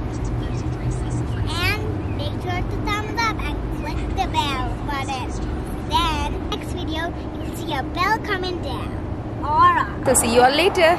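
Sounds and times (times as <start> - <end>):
car engine idling: 0.0 - 10.9.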